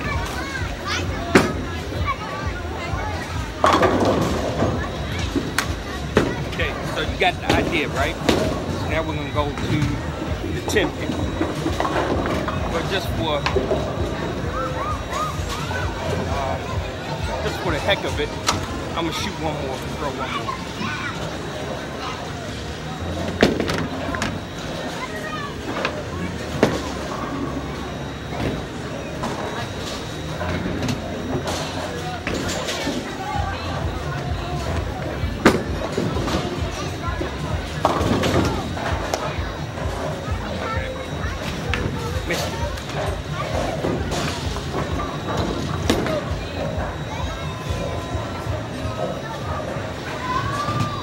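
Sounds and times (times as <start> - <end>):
chatter: 0.0 - 51.0.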